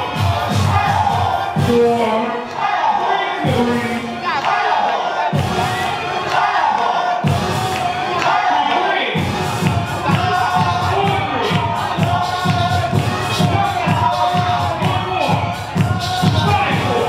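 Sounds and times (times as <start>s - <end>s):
crowd cheering and shouting: 0.0s - 17.0s
loud dance music: 0.0s - 17.0s.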